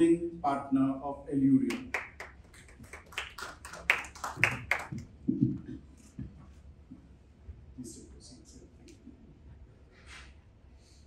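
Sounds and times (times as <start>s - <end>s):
scattered applause: 1.7s - 5.1s.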